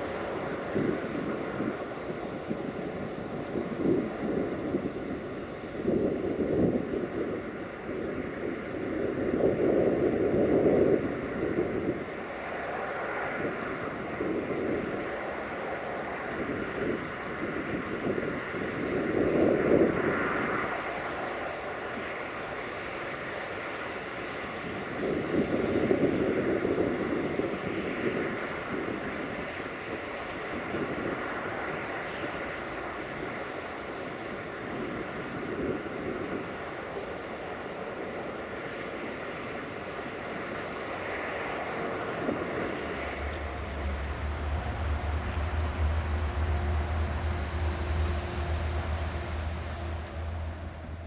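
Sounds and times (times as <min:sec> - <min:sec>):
distant freight train rumbling: 0:00.0 - 0:51.0
steady low hum: 0:00.0 - 0:51.0
wind on microphone: 0:00.0 - 0:51.0.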